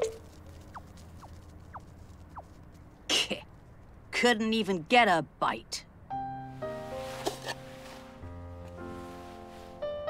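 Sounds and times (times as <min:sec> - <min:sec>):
quiet low hum: 0:00.0 - 0:06.4.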